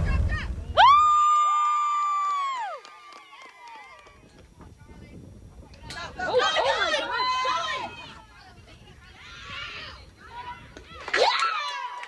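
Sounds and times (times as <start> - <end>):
high-pitched cheering shout: 0.8 - 4.1, 9.5 - 12.0.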